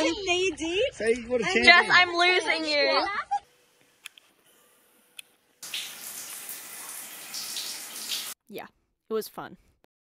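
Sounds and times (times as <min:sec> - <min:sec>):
shower water running: 0:05.6 - 0:08.4.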